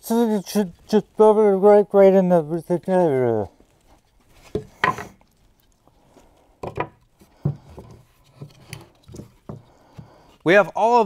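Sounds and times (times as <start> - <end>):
wood knocking and rubbing: 4.0 - 5.4, 6.6 - 10.4.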